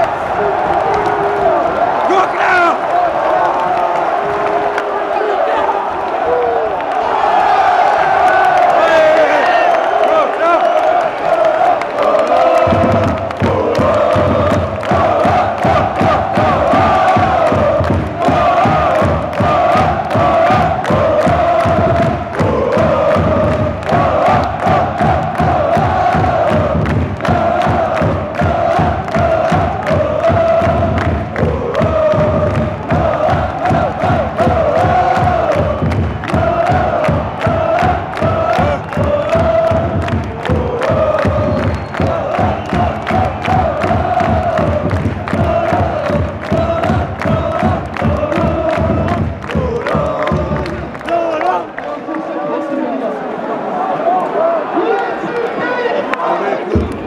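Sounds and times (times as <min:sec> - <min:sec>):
football supporters chanting: 0:00.0 - 0:57.0
drum beating: 0:11.3 - 0:51.7, 0:56.7 - 0:57.0.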